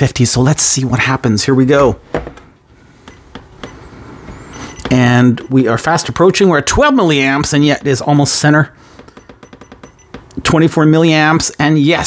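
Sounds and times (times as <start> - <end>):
keypad button clicks: 3.0 - 5.6, 9.0 - 10.4.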